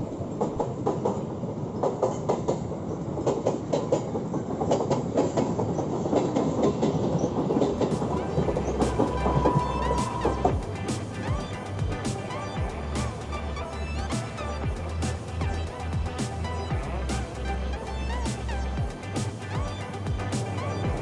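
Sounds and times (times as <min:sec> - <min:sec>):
train wheels clacking on rails: 0:00.2 - 0:13.4.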